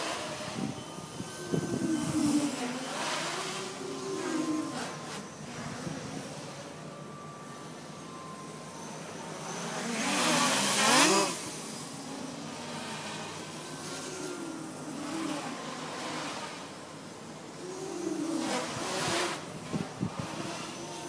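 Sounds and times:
quadcopter motors buzzing: 0.0s - 21.0s.

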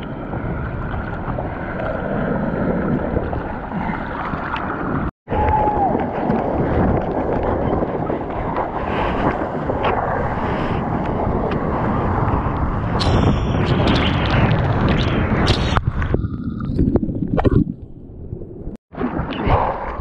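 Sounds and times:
sea water splashing: 0.0s - 12.6s
underwater clicks and pops: 13.0s - 17.9s.

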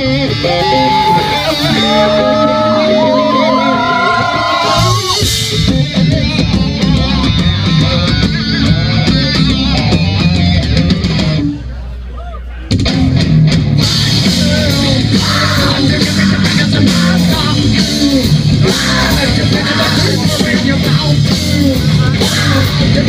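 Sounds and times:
live heavy rock band: 0.0s - 12.0s, 12.6s - 23.0s.

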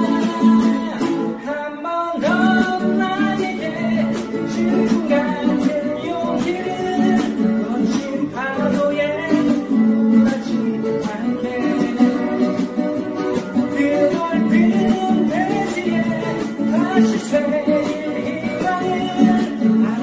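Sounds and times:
acoustic guitar strummed: 0.0s - 20.0s
person singing: 0.0s - 20.0s.

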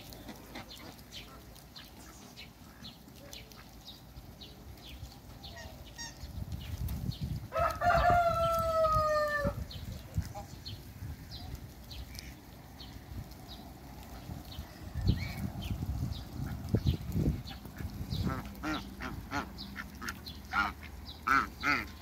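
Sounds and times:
rooster crowing: 7.5s - 9.6s.

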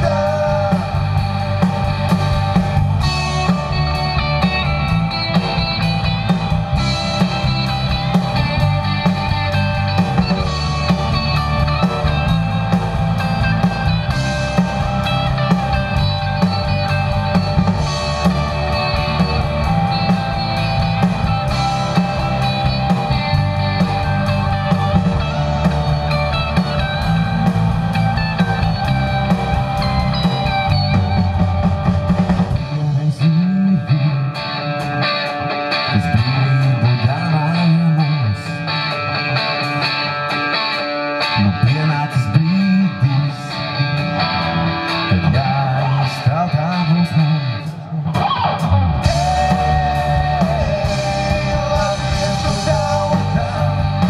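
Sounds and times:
rock band playing live: 0.0s - 54.0s.

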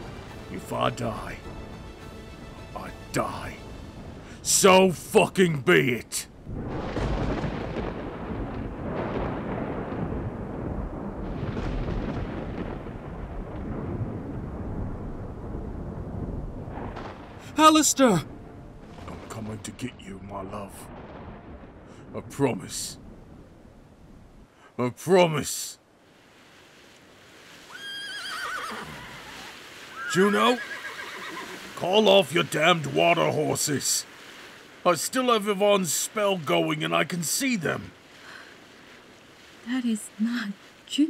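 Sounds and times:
rushing water: 0.0s - 10.2s, 16.0s - 41.0s
horse whinnying: 27.7s - 31.7s.

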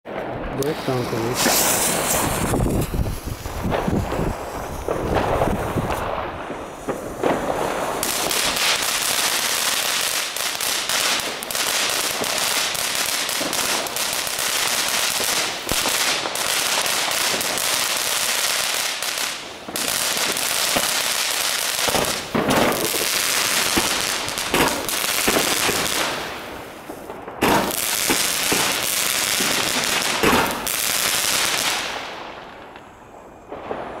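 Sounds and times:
firework crackling: 0.1s - 34.0s
loud firework cracks: 0.1s - 34.0s.

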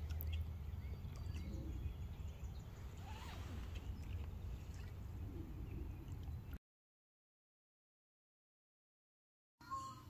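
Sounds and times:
small birds chirping: 0.0s - 6.6s
rising and falling bird call: 1.2s - 4.1s.

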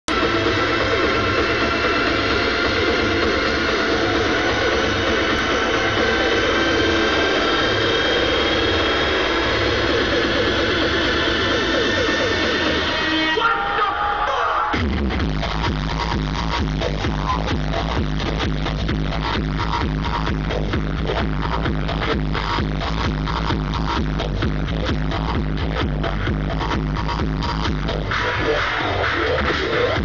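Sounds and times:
crowd noise: 0.0s - 30.0s
loud electronic dance music: 0.1s - 30.0s.

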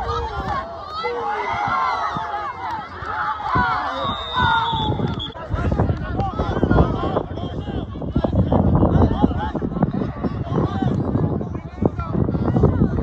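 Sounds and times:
spectators and players shouting: 0.0s - 13.0s.

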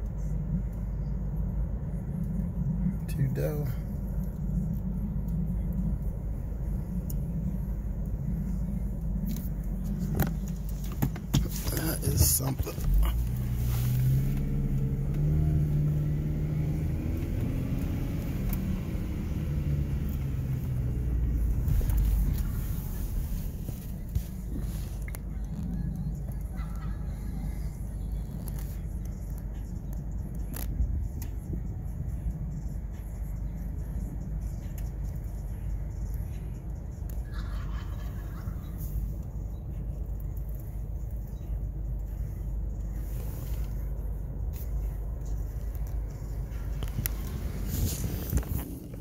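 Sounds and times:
car engine rumbling: 0.0s - 49.0s.

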